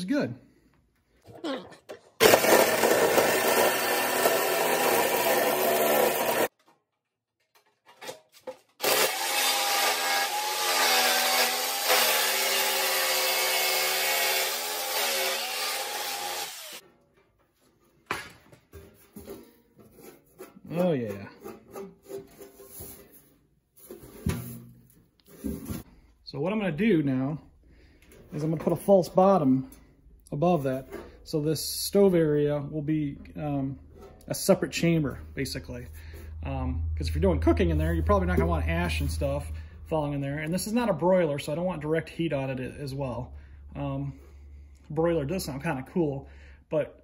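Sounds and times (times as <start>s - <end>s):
jigsaw cutting through sheet steel: 2.2s - 6.5s, 8.8s - 16.8s
knocks and clatter of handling: 6.5s - 8.8s, 16.8s - 26.0s.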